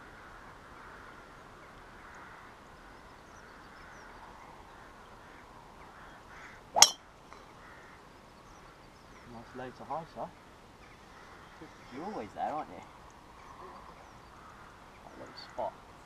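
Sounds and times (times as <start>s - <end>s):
outdoor background noise: 0.0s - 16.0s
golf club striking ball: 6.8s - 7.0s.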